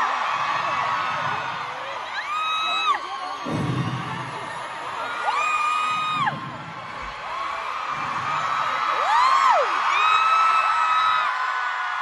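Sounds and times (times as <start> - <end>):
crowd screaming and cheering: 0.0 - 12.0.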